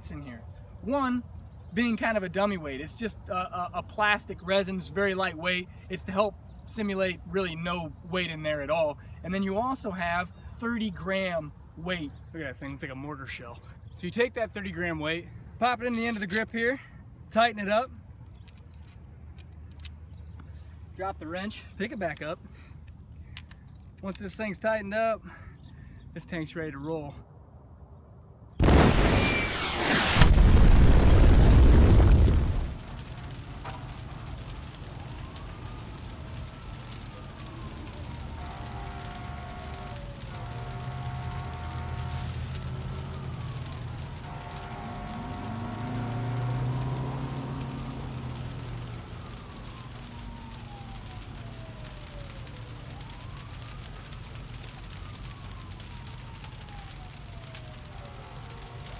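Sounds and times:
explosion blast: 28.6s - 36.1s
falling whistle-like tones: 29.0s - 30.4s.

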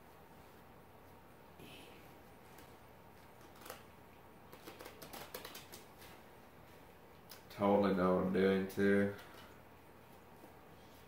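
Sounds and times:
cards being shuffled: 2.5s - 6.2s.

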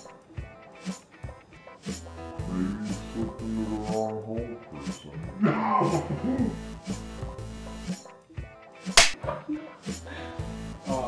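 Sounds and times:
background music: 0.0s - 11.0s
clapperboard snap: 8.9s - 9.3s.

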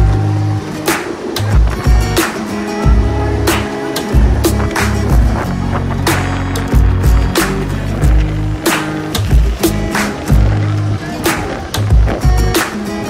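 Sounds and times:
kick drum thumps: 4.2s - 6.0s, 6.7s - 7.4s, 11.9s - 12.6s.

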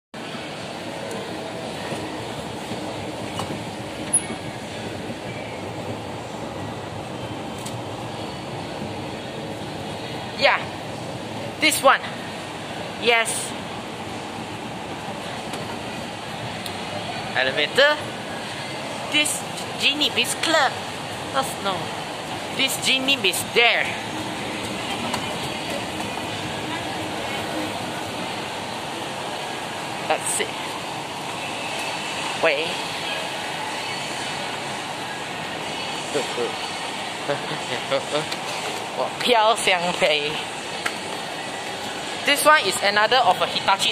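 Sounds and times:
chatter of voices: 32.4s - 39.2s.

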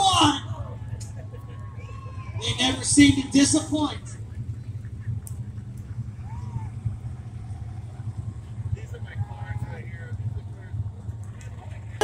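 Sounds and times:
distant race car engines rumbling: 0.0s - 12.0s.

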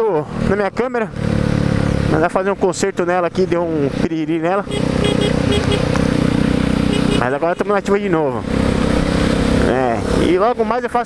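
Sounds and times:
motorcycle engine running: 4.6s - 10.5s
wet road noise: 4.6s - 10.6s.

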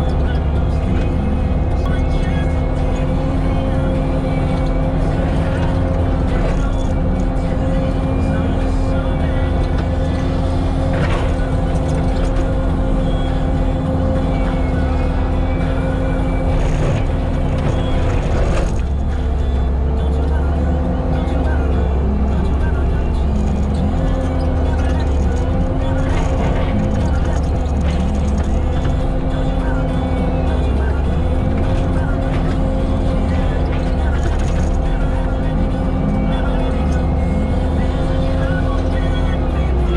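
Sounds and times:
diesel engine and mulcher running: 0.0s - 39.9s.

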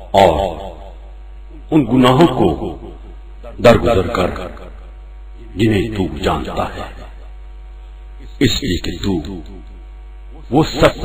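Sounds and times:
man speaking: 0.0s - 0.6s, 1.5s - 4.7s, 5.4s - 7.1s, 8.2s - 9.5s, 10.4s - 11.0s
electrical mains hum: 0.0s - 11.0s.

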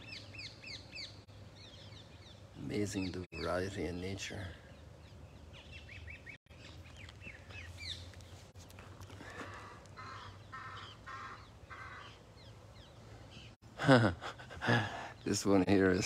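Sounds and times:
high falling bird chirps: 0.0s - 13.6s
harsh caw-like bird calls: 9.0s - 13.6s.

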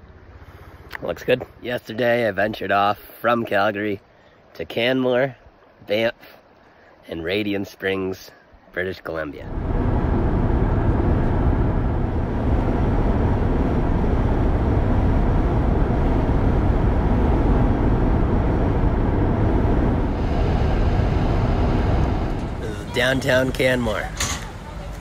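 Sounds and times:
car road and wind noise: 9.5s - 25.0s.

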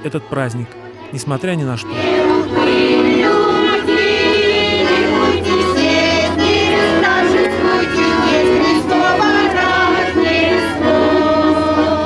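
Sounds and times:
button accordion: 0.0s - 12.0s
women singing in chorus: 1.9s - 12.0s.

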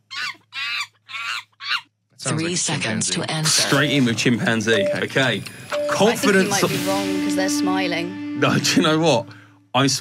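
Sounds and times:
chimpanzee cries: 0.0s - 1.9s.

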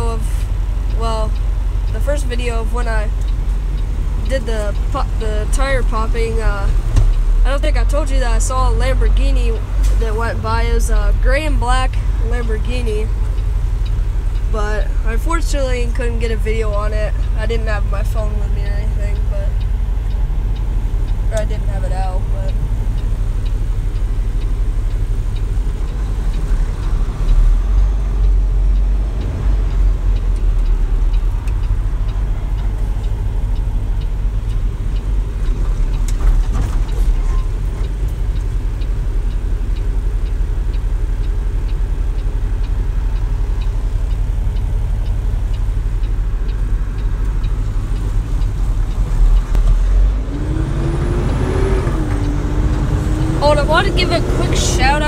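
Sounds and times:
road noise: 0.0s - 55.0s
truck diesel engine drone: 0.0s - 55.0s.

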